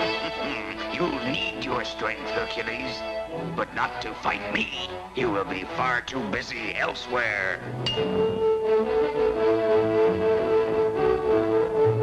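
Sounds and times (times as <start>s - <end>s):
orchestral string music: 0.0s - 12.0s
magic tuning fork tone: 7.8s - 8.6s.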